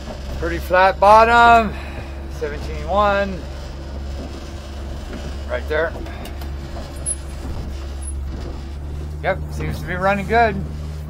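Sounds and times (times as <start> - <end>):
outboard engine running: 0.0 - 11.0.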